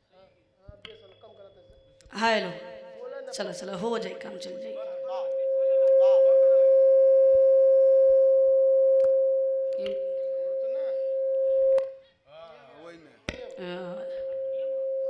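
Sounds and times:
high-pitched feedback howl: 2.6s - 11.8s, 13.8s - 15.0s.

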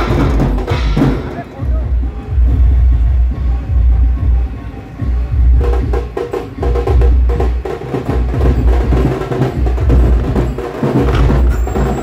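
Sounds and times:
busy percussion: 0.0s - 12.0s
heavy bass beat: 0.0s - 12.0s
loud band music through speakers: 0.0s - 12.0s.

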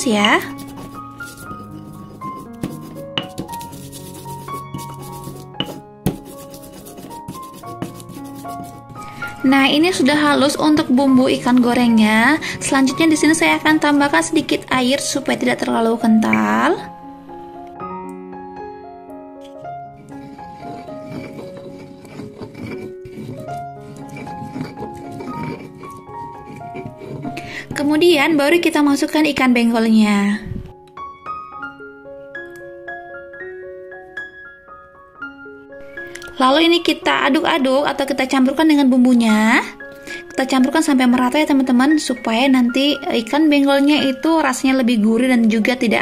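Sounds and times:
light background music: 0.0s - 46.0s
pestle grinding in stone mortar: 0.4s - 9.1s, 20.1s - 27.4s
pestle knocks: 2.6s - 3.7s, 5.6s - 6.4s.

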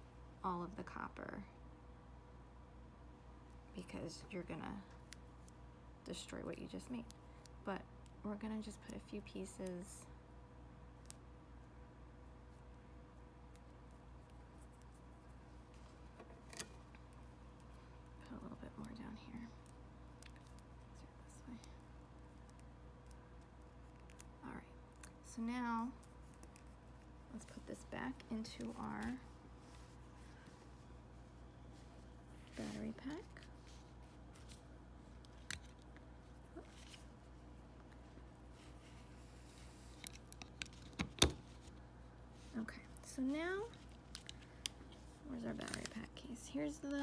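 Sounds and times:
faint steady hum: 0.0s - 47.0s
small clicks of cable handling: 39.9s - 41.8s, 43.7s - 45.0s.

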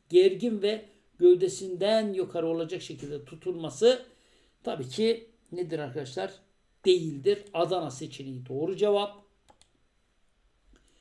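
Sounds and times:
computer mouse clicking: 9.5s - 9.8s.

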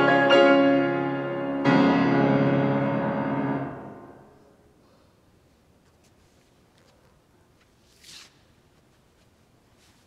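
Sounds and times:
piano chord ringing: 0.0s - 4.6s.

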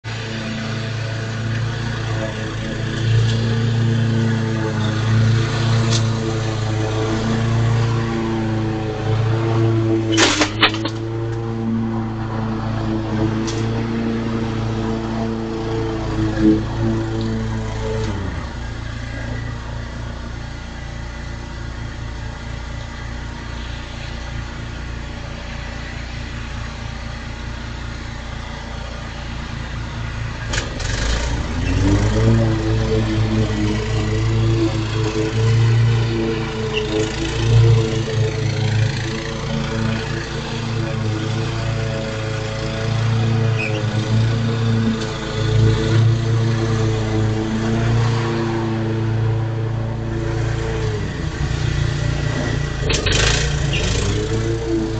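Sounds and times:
lawn mower engine running: 0.0s - 54.9s.

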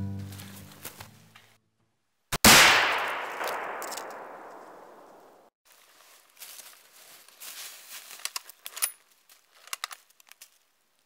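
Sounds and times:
music: 0.0s - 1.3s
rifle shot echoing: 2.3s - 5.5s.

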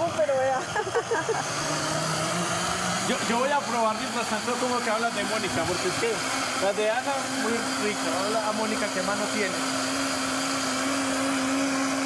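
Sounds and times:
blender running: 0.0s - 12.0s.

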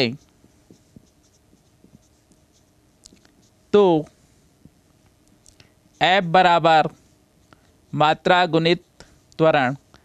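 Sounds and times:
marker pen scratching on board: 0.0s - 3.7s, 5.9s - 9.1s.

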